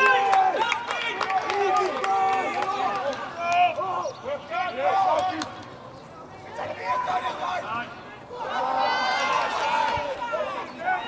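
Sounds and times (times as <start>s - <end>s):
voices shouting calls: 0.0s - 11.0s.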